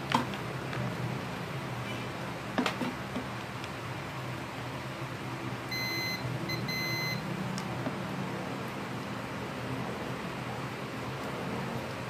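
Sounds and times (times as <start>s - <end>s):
multimeter continuity beeps: 5.7s - 7.2s.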